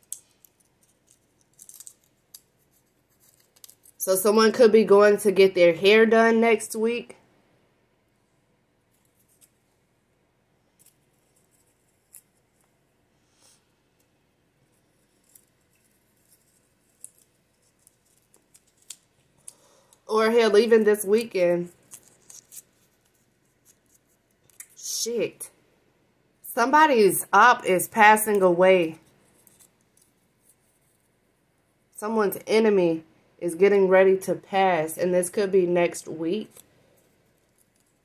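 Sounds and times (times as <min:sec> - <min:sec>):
paper slip crinkling: 0:00.0 - 0:04.0, 0:14.7 - 0:19.9, 0:21.2 - 0:24.9, 0:29.0 - 0:31.1.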